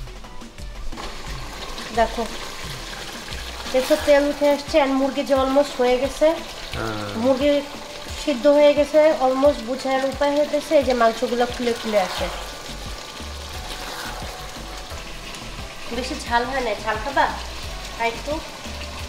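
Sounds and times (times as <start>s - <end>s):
background music with held notes: 0.0s - 19.0s
curry sizzling in a pot: 0.0s - 19.0s
spatula scraping a pot: 2.4s - 4.6s, 11.6s - 14.6s.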